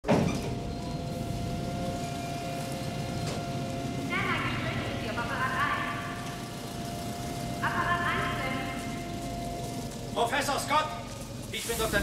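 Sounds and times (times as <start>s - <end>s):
machinery low rumble: 0.0s - 12.0s.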